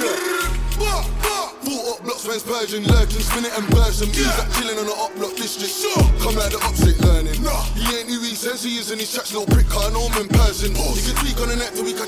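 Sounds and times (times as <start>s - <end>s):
man rapping over drill beat: 0.0s - 12.0s
sliding deep bass notes: 0.4s - 1.3s, 2.9s - 4.6s, 6.0s - 7.9s, 9.6s - 11.6s.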